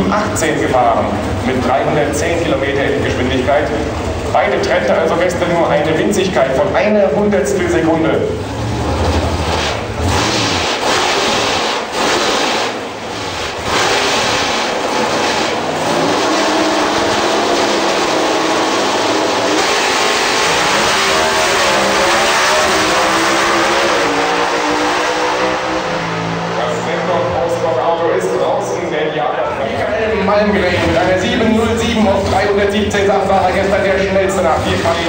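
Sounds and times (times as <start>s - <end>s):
drag car engines revving: 0.0s - 35.0s
engines shifting through gears: 0.0s - 35.0s.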